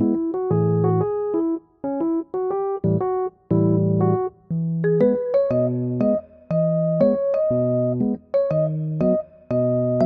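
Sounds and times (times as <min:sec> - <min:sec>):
electric piano tune: 0:00.0 - 0:10.0.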